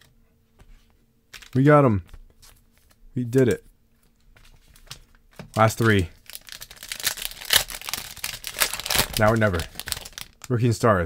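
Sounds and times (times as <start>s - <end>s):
foil wrapper crinkling and tearing: 4.8s - 10.5s.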